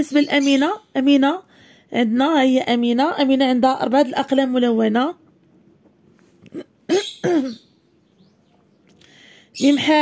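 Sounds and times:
person clearing throat: 6.5s - 7.6s.

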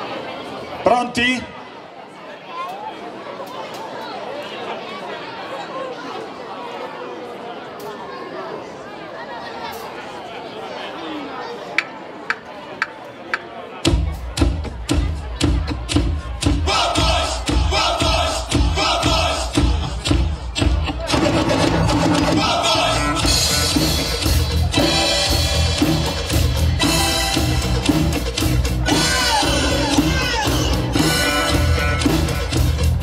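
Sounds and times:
audience chatter: 0.0s - 33.0s
drum kits playing rock beat: 13.8s - 33.0s.

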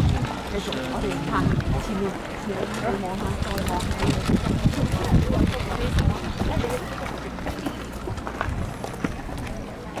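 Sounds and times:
wind rumble on microphone: 0.0s - 7.4s, 8.0s - 9.6s
footsteps: 0.0s - 10.0s
indistinct voices: 0.0s - 10.0s.

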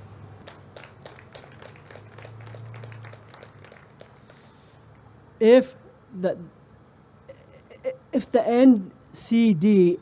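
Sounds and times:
light clapping: 0.2s - 4.4s.

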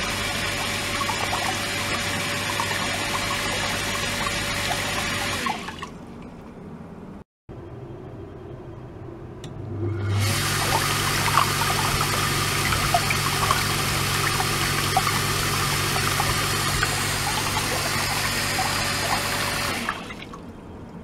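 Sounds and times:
water jet splashing into tub: 0.0s - 6.0s, 10.1s - 20.4s
pump humming: 0.0s - 6.2s, 9.6s - 21.0s.

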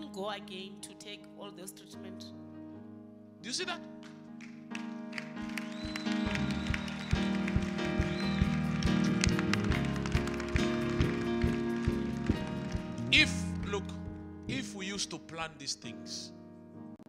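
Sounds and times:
sustained keyboard chords: 0.0s - 17.0s
steady drum beat: 5.8s - 14.8s.

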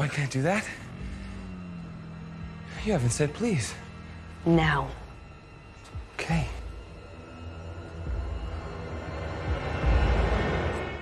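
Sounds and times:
low droning suspense music: 0.0s - 11.0s.

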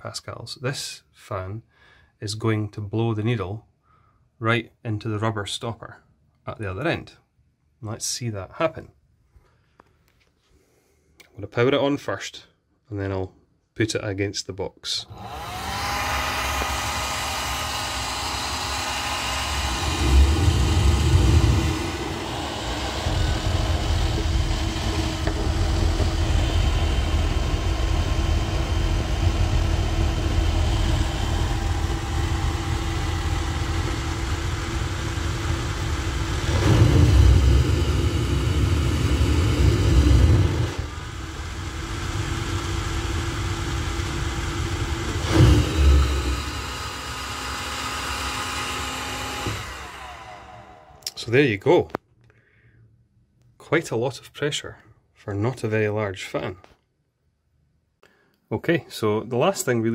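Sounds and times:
blower fan whining: 15.1s - 51.2s
low air rushing: 19.7s - 33.5s.

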